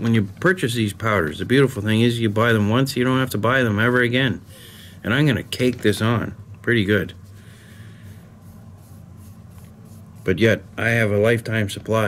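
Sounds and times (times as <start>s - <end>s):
paintbrush bristles scratching: 0.0s - 6.2s, 6.8s - 11.4s.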